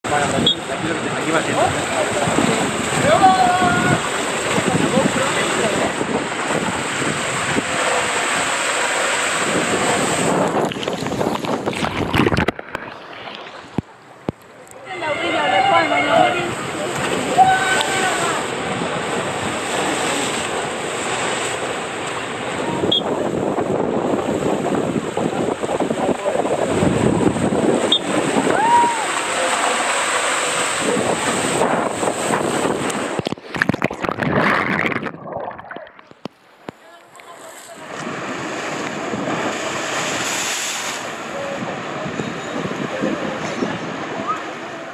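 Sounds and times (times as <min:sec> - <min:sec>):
waterslide water rushing and splashing: 0:00.0 - 0:44.9.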